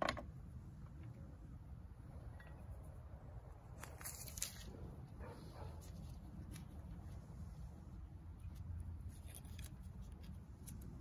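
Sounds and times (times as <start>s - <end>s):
soft rustle: 3.7s - 11.0s.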